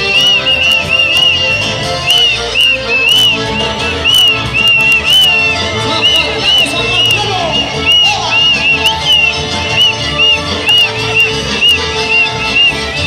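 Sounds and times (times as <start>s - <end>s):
folk music playing: 0.0s - 13.0s
high chirps: 0.0s - 13.0s.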